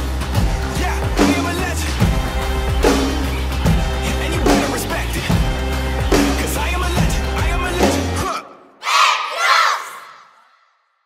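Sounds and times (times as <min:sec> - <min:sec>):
drum-heavy backing track: 0:00.0 - 0:08.3
children shouting together: 0:08.8 - 0:10.6.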